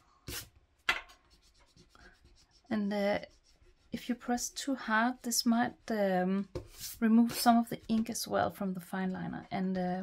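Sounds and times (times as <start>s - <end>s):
eraser rubbing paper: 0.3s - 0.5s, 1.1s - 8.2s.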